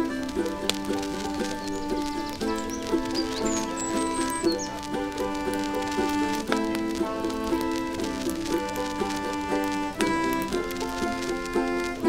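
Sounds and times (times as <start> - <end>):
blues concertina music: 0.0 - 12.0.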